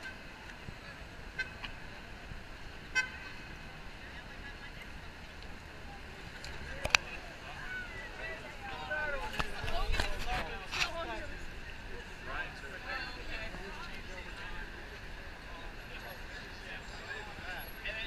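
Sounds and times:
passersby voices: 0.0 - 18.0
traffic hum: 0.0 - 18.0
car horn toots: 2.9 - 3.3.

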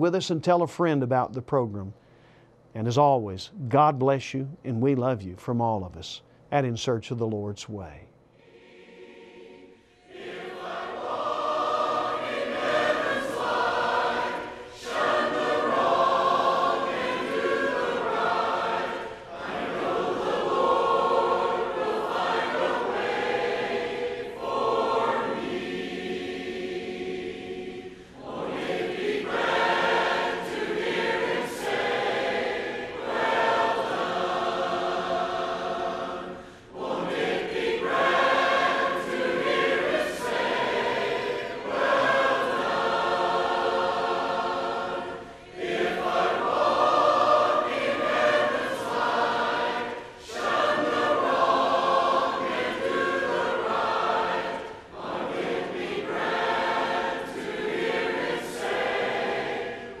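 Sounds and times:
congregation singing a hymn: 6.6 - 60.0.

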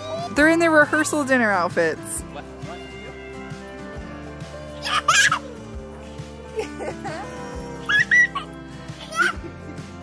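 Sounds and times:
background music: 0.0 - 10.0
toddlers squealing and giggling: 4.4 - 5.8, 6.7 - 9.5.

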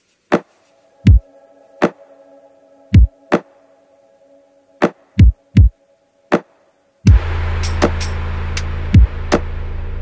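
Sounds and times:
deep kick drum thumps: 5.2 - 5.7, 7.1 - 7.3, 8.9 - 9.4.

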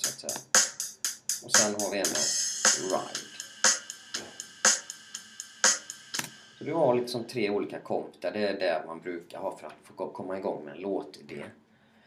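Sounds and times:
ride cymbal ticking: 0.0 - 6.7.

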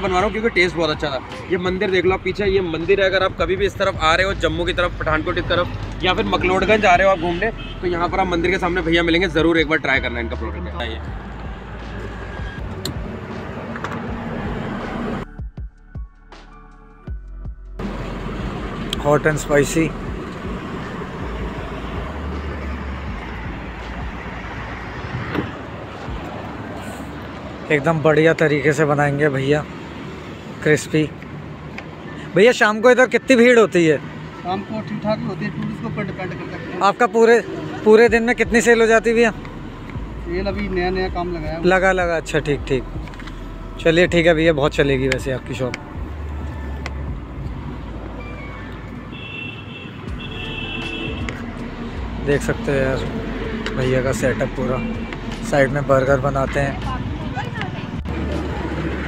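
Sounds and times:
road traffic rumble: 0.0 - 15.5, 17.4 - 59.0.

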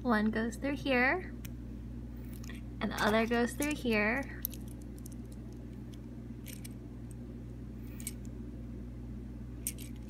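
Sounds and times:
steady low hum: 0.0 - 10.0
plastic parts clicking and rustling: 2.3 - 6.8, 9.6 - 10.0.

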